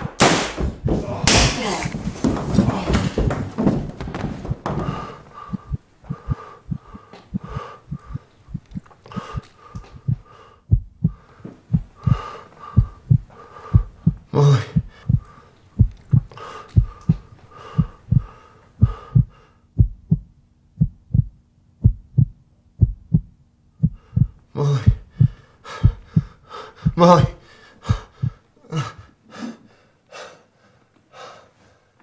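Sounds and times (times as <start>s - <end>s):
heartbeat thumps: 3.1s - 28.5s
heavy gasping breaths: 4.6s - 19.7s, 23.8s - 32.0s.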